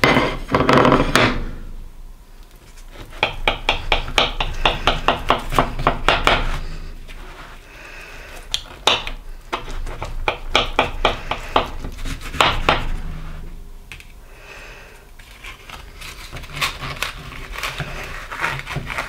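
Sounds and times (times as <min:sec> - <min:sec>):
knife sawing through quiche in foil: 0:15.4 - 0:19.0.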